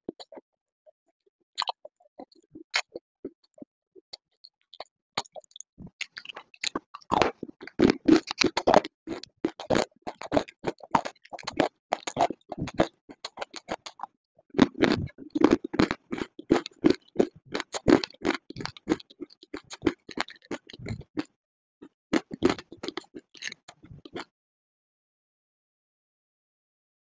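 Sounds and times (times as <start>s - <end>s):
crunching and chewing: 1.6s - 21.4s, 22.1s - 24.3s.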